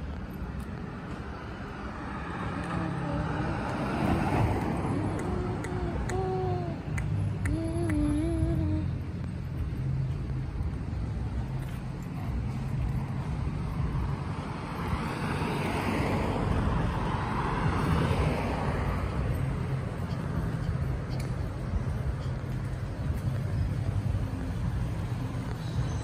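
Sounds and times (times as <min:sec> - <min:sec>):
car passing by: 0:00.8 - 0:07.1, 0:12.4 - 0:26.0
steady low rumble: 0:04.5 - 0:15.1.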